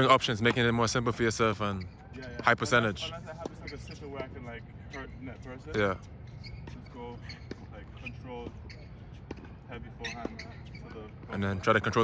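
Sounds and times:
tennis ball hit and bouncing: 0.4 - 0.8, 9.2 - 10.4.

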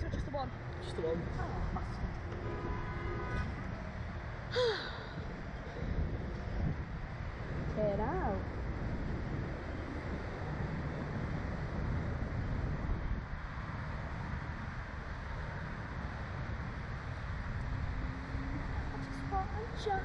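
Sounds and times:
wind noise on microphone: 0.0 - 20.0.

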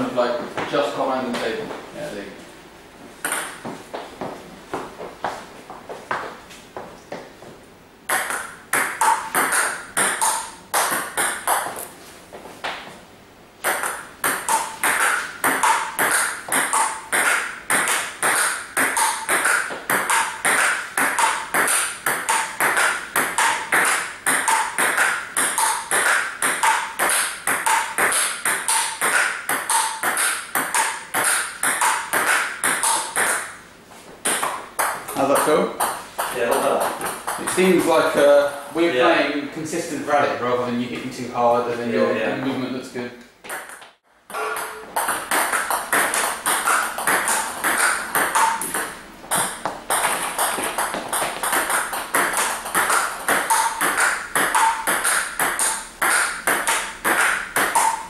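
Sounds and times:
ball bouncing on table: 3.2 - 3.8, 8.1 - 11.8, 13.6 - 33.5, 34.3 - 37.9, 43.5 - 58.0
table tennis ball clicking off bats: 8.1 - 11.8, 13.6 - 33.5, 43.5 - 58.0.

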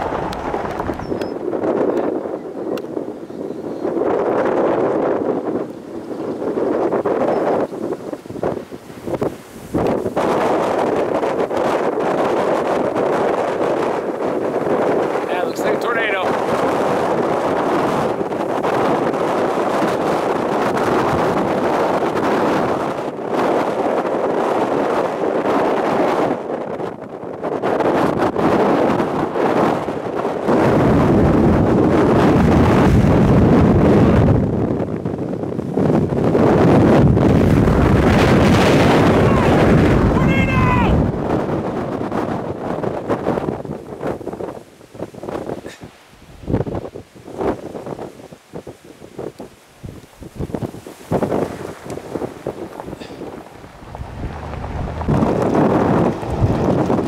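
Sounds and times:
vehicle driving fast on dirt road: 0.0 - 1.9, 50.5 - 57.0
strong wind buffeting microphone: 0.0 - 57.0.

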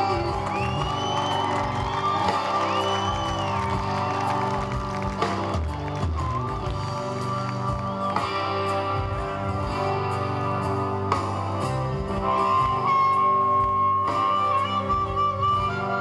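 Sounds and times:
live rock band playing: 0.0 - 16.0.

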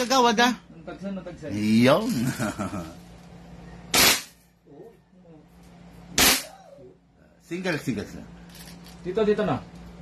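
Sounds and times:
toy blaster shots: 3.9 - 4.4, 6.2 - 6.5.

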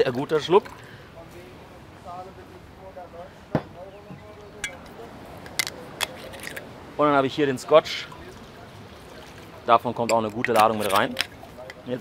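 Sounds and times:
bottles clicking and tapping: 0.0 - 0.9, 4.6 - 6.7, 9.9 - 12.0.

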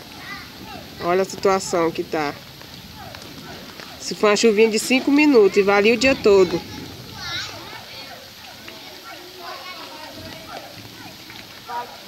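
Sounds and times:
faint voices: 0.0 - 12.0
rain falling on flooded street: 0.0 - 12.0.

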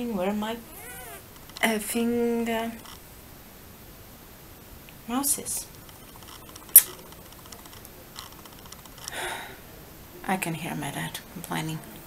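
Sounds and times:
short breathy sound: 9.1 - 9.7.

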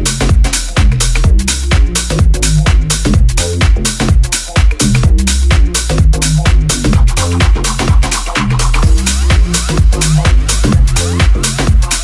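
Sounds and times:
kick drum beat: 0.0 - 12.0
tech house dance music: 0.0 - 12.0.

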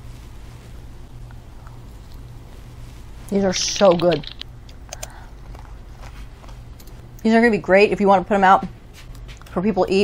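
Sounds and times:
steady low hum: 0.0 - 10.0
soft chewing mouth sounds: 0.2 - 3.4, 4.6 - 7.2.

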